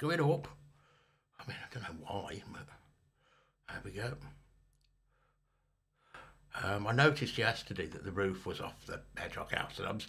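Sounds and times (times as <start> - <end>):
man's voice: 1.4 - 2.8, 3.7 - 4.4, 6.6 - 10.0.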